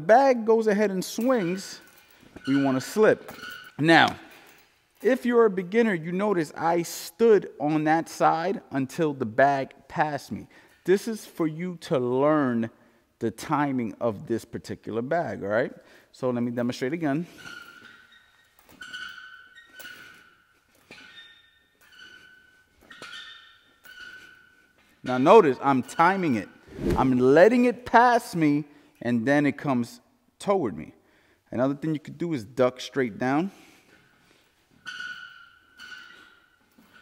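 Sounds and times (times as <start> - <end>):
chain squeaking: 0.9 - 6.0, 16.7 - 26.6, 33.9 - 37.0.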